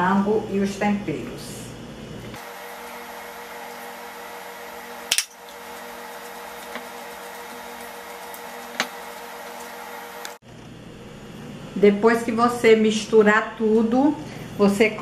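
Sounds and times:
steady background hum: 0.0s - 15.0s.

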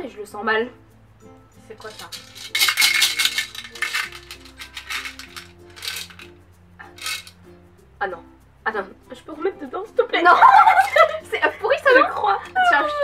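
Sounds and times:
soft background music: 0.0s - 13.0s
jelly beans rattling in a box: 1.8s - 6.3s, 7.0s - 7.4s.

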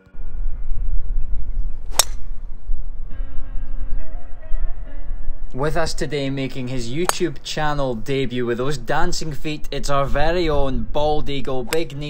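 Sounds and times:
background music: 0.0s - 11.0s
steady low rumble: 0.0s - 11.4s
golf club striking ball: 1.9s - 2.4s, 7.0s - 7.3s.

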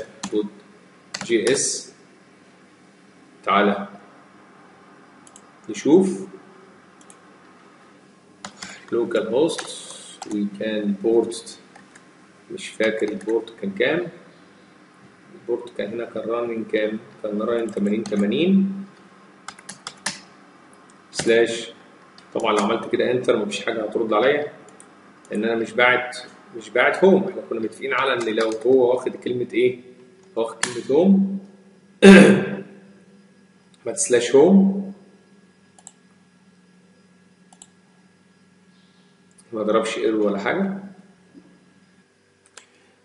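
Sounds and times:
faint electrical hum: 0.0s - 43.0s
computer keyboard typing: 1.1s - 1.6s, 5.2s - 5.5s, 7.0s - 7.2s, 8.4s - 10.4s, 12.8s - 13.4s, 17.6s - 18.4s, 19.5s - 20.3s, 28.2s - 28.8s
computer mouse clicks: 1.1s - 1.6s, 5.2s - 5.5s, 7.0s - 7.2s, 8.4s - 9.0s, 9.6s - 10.4s, 11.7s - 12.1s, 12.8s - 13.4s, 18.9s - 21.3s, 24.7s - 25.4s, 28.2s - 28.7s, 35.8s - 36.0s, 37.5s - 37.8s, 42.4s - 42.8s.

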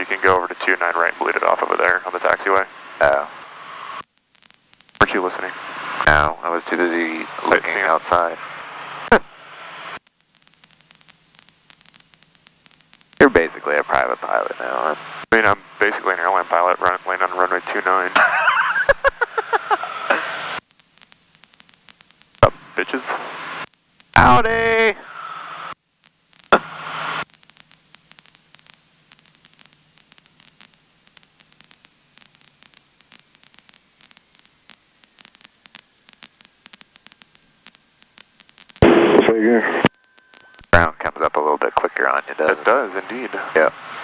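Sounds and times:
radio speech: 0.0s - 3.4s, 5.0s - 8.4s, 13.2s - 20.5s, 22.4s - 23.5s, 24.2s - 25.2s, 38.8s - 44.0s
faint radio hiss: 0.0s - 44.0s
crackling clicks: 3.3s - 6.2s, 9.9s - 13.2s, 18.2s - 24.3s, 25.6s - 44.0s.

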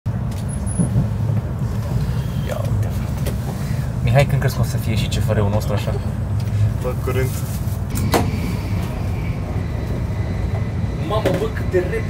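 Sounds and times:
train rumble from inside cabin: 0.1s - 12.0s.

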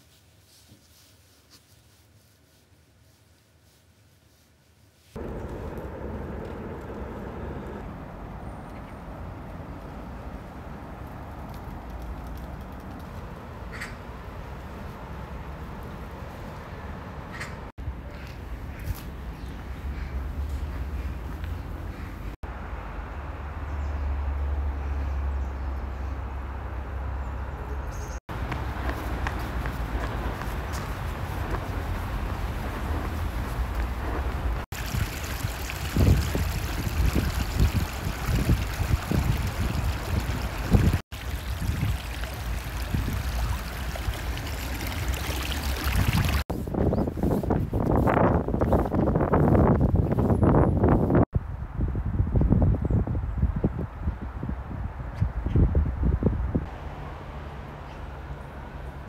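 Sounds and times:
low rumble: 5.2s - 8.8s
stream trickling and gurgling: 28.4s - 46.5s.

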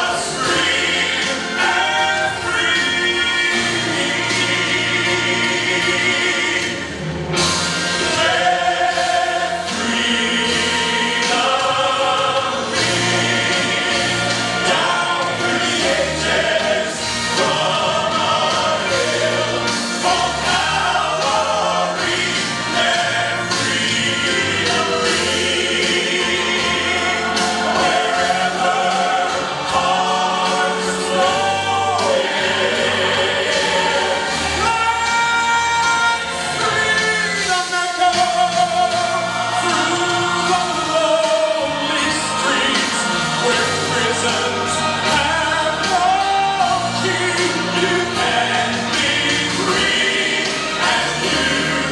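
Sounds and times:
instrumental backing: 0.0s - 51.9s
male vocal group singing gospel: 0.0s - 51.9s.

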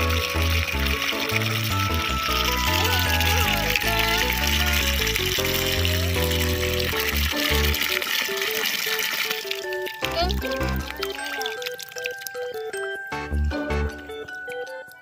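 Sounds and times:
water pouring into plastic tub: 0.0s - 12.7s
background music: 0.0s - 15.0s.

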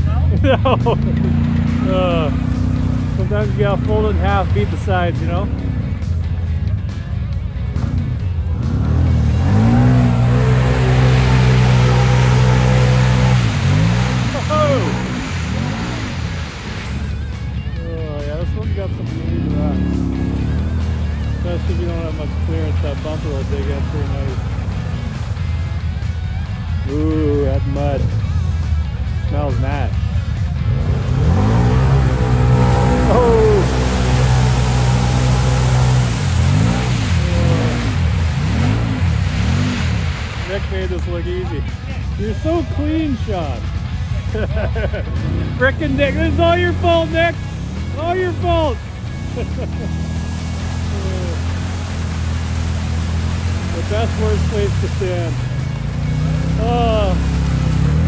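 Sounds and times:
utility vehicle engine revving: 0.0s - 58.0s.

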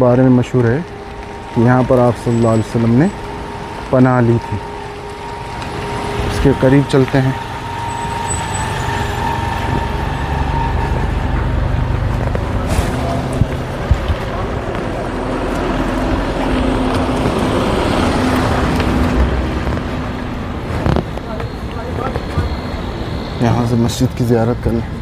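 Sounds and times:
traffic noise: 0.0s - 25.0s
vehicle engine humming: 0.0s - 25.0s.

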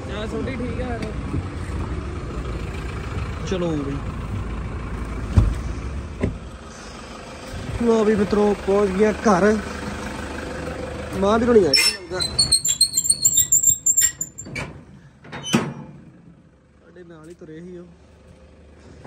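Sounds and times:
car engine idling: 0.0s - 15.2s.

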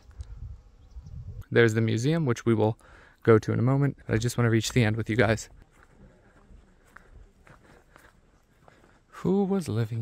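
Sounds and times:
footsteps on paved path: 3.8s - 10.0s.

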